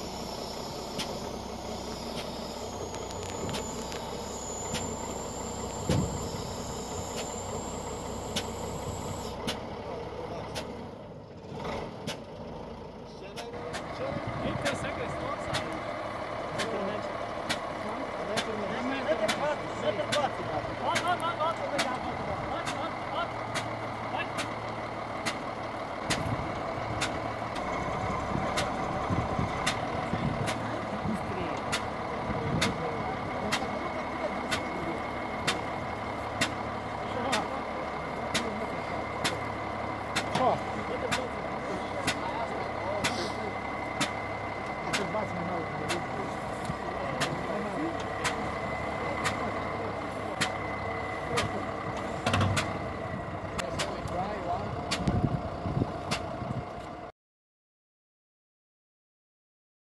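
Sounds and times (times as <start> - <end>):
faint high whine: 0.0 - 9.3
diesel engine running: 0.0 - 57.1.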